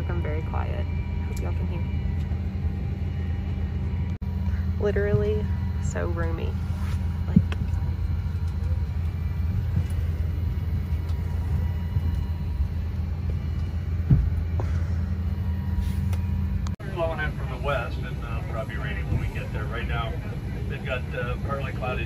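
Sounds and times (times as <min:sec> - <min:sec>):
airliner cabin hum: 0:00.0 - 0:22.0
soft thumps: 0:13.2 - 0:14.8.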